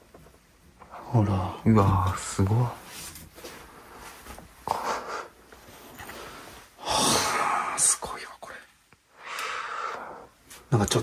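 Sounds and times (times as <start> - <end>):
person whispered exclamation: 7.6 - 8.7.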